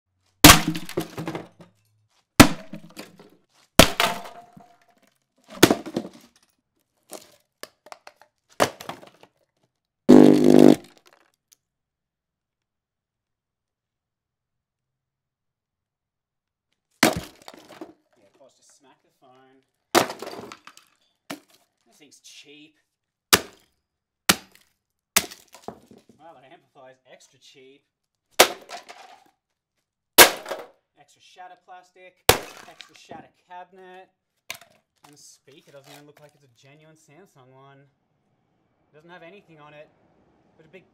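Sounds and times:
sledgehammer smashing wooden cabinet: 0:00.4 - 0:01.6, 0:02.4 - 0:03.2, 0:03.8 - 0:04.8, 0:05.5 - 0:06.4, 0:08.6 - 0:09.2, 0:10.1 - 0:10.8, 0:17.0 - 0:17.9, 0:20.0 - 0:20.7, 0:25.2 - 0:26.0, 0:28.4 - 0:29.2, 0:30.2 - 0:30.7, 0:32.3 - 0:32.8
subwoofer crashing onto concrete: 0:00.4 - 0:01.6, 0:10.1 - 0:10.9
pieces knocking and clattering: 0:00.4 - 0:09.6, 0:17.0 - 0:18.1, 0:20.0 - 0:21.7, 0:25.2 - 0:26.2, 0:28.4 - 0:29.3, 0:32.3 - 0:33.0, 0:34.5 - 0:35.2.

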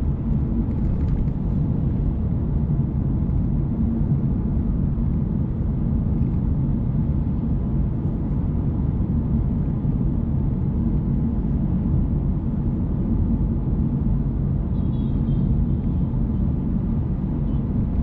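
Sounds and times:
car driving low rumble: 0:00.0 - 0:18.0.

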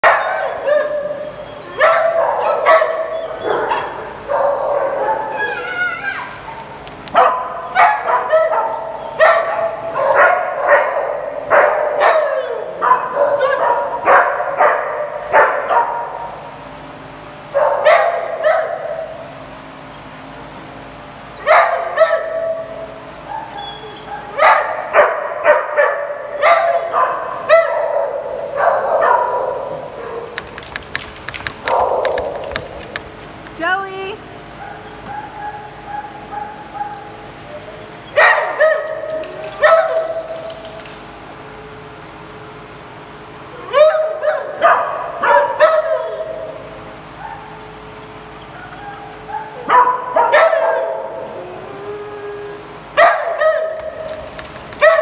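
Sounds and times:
dogs barking and yipping: 0:00.0 - 0:55.0.

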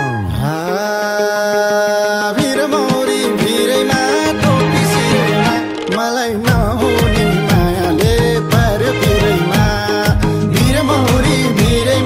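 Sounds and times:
folk song with drum beat: 0:02.2 - 0:12.0.

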